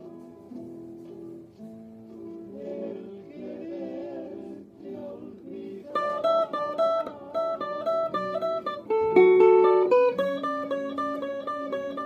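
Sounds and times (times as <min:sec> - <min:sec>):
electric guitar lead melody: 0:06.0 - 0:12.0.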